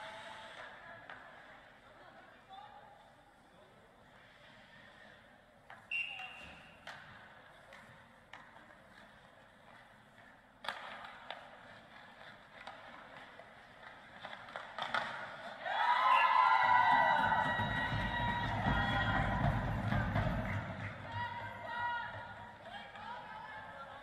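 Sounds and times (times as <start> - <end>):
skates scraping on ice: 6.5 - 15.9, 16.7 - 24.0
hockey stick clicking on puck: 10.6 - 15.5
puck hit by stick: 10.6 - 15.5
crowd shouting and cheering: 15.6 - 23.9
music: 16.9 - 21.2.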